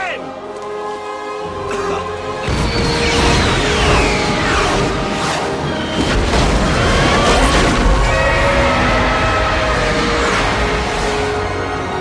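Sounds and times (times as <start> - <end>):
dramatic film score: 0.0 - 12.0.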